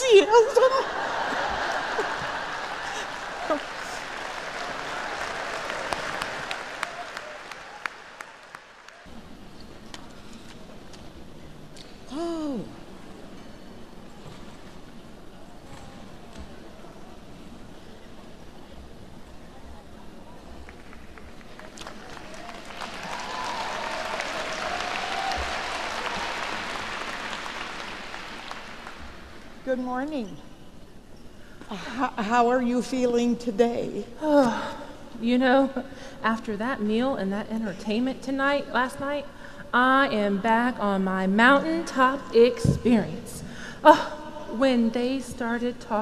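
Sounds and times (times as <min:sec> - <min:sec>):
audience applause: 0:01.0 - 0:09.1, 0:20.7 - 0:29.6.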